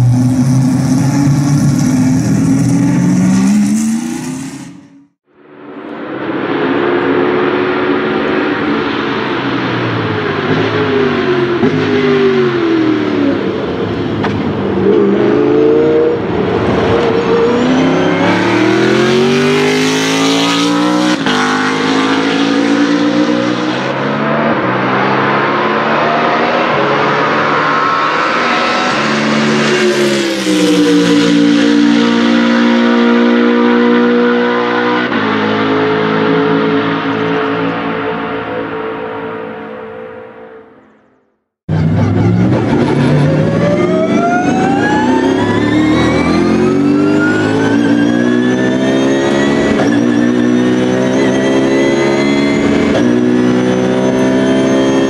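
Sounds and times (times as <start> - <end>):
race car engine revving: 0.0 - 5.2, 6.7 - 40.4, 41.7 - 55.0.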